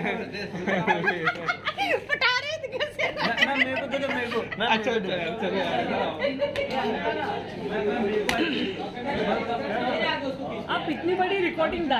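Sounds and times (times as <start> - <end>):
people talking at once: 0.0 - 11.9.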